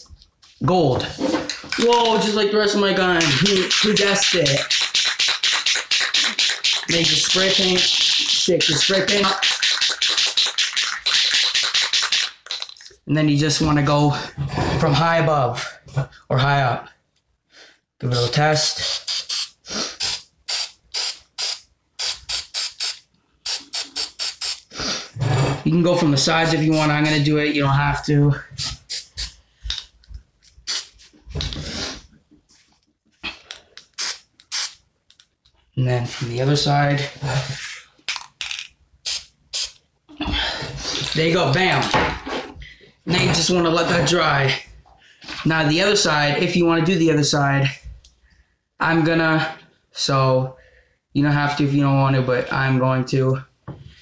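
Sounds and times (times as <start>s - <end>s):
spray can mixing ball rattling: 1.5s - 13.0s, 18.8s - 24.7s, 33.8s - 35.2s, 38.1s - 39.8s.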